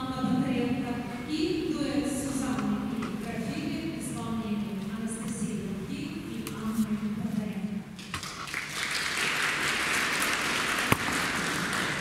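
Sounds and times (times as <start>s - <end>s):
audience applauding: 8.1s - 12.0s.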